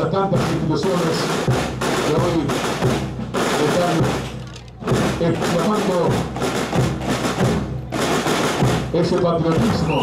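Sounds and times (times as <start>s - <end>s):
snare and bass drums playing: 0.0s - 10.0s.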